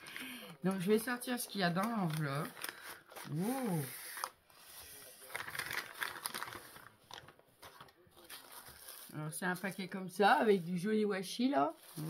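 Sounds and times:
paper rustling and crinkling: 0.7 - 10.8, 11.6 - 12.0.

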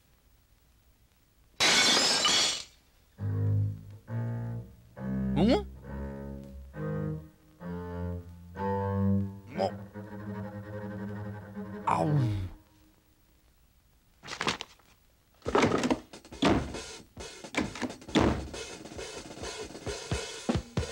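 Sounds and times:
low bowed strings: 3.2 - 12.7.

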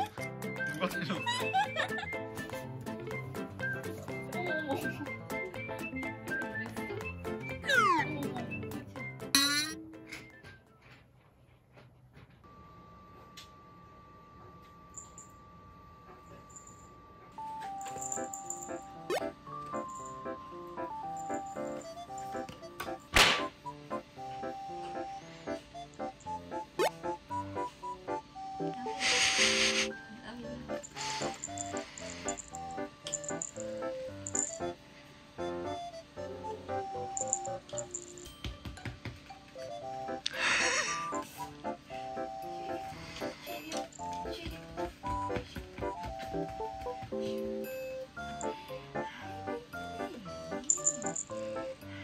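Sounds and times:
bouncy background music: 0.0 - 10.8, 17.3 - 52.0.

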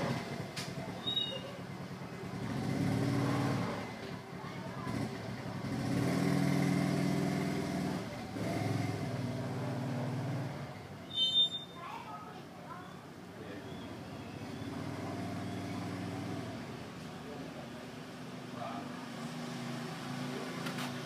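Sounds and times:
passing motor vehicles: 0.0 - 11.1, 12.5 - 21.0.

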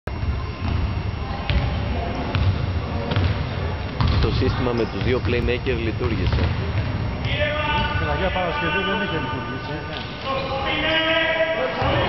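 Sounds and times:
basketball dribbling on hardwood: 4.0 - 4.3.

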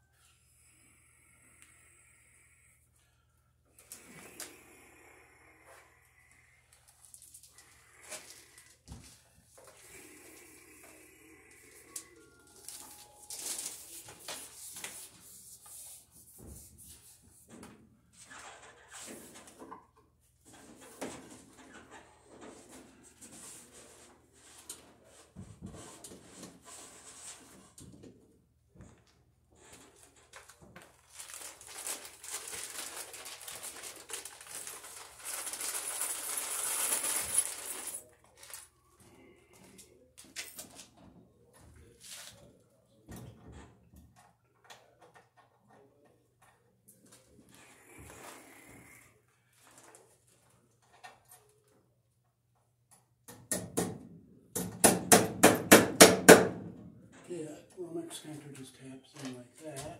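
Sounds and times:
cable rustling and scraping: 29.0 - 38.7.

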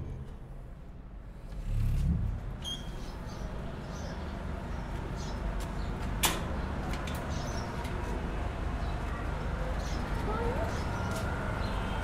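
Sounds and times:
traffic rumble: 0.0 - 12.0
vehicle engine: 0.0 - 12.0.

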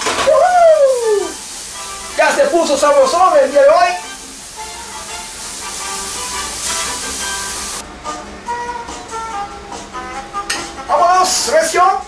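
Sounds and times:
meat sizzling in a frying pan: 0.3 - 7.8
background music: 1.0 - 12.0.

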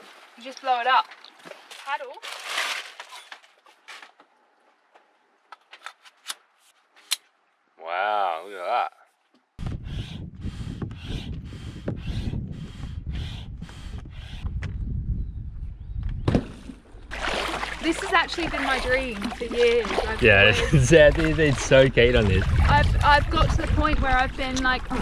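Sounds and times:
wind on microphone: 9.6 - 17.0, 18.2 - 25.0
hand pump strokes: 9.7 - 14.5
person speaking: 17.8 - 23.8.

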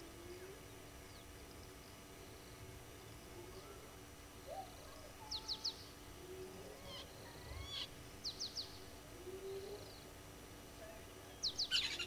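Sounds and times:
bird cooing: 3.3 - 5.1, 6.2 - 7.9, 9.0 - 10.0.

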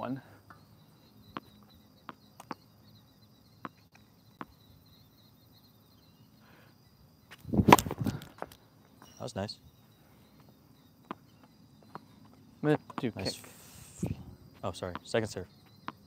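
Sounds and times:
tennis ball bouncing: 1.3 - 2.6, 3.6 - 4.6, 7.6 - 8.0
racket striking ball: 7.6 - 8.0.

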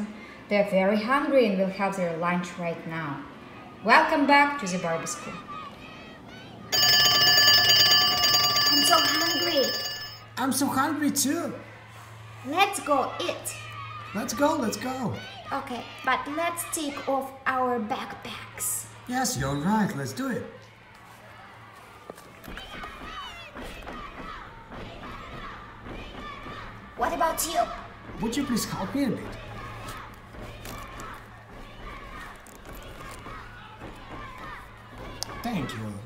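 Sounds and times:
electric school bell ringing: 6.7 - 10.7.

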